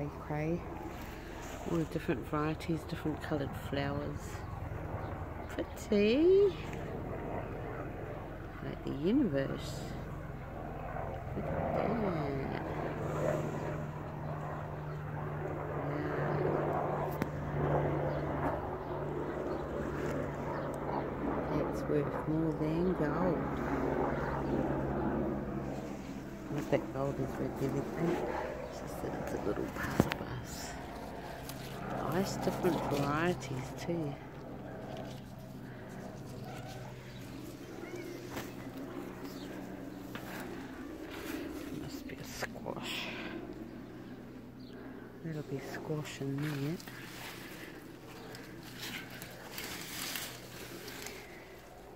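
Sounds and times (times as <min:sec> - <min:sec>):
low engine drone: 0:00.0 - 0:51.9
steady low hum: 0:00.0 - 0:51.9
leaves rustling against phone: 0:29.9 - 0:33.7, 0:34.8 - 0:42.0, 0:45.9 - 0:51.9.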